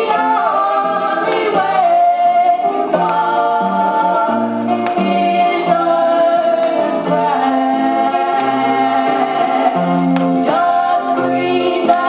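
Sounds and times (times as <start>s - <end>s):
gospel singing from vinyl record: 0.0s - 12.0s
low musical accompaniment: 0.0s - 12.0s.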